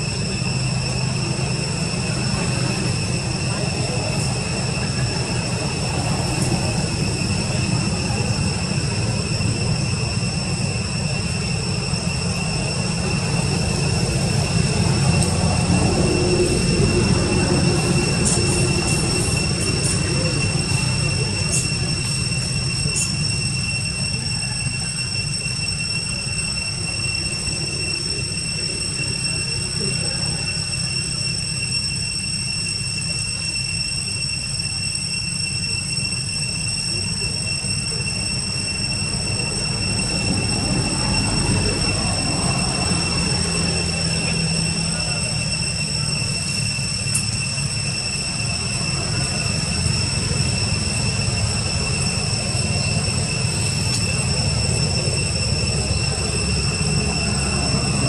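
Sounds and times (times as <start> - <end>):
high-pitched drone: 0.0 - 58.0.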